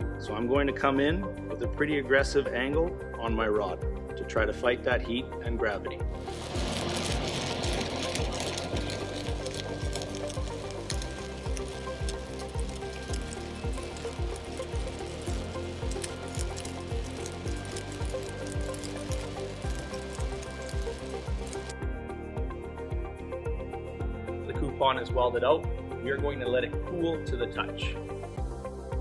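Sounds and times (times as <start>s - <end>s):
background music with steady beat: 0.0s - 29.0s
welding arc crackling: 6.2s - 21.8s.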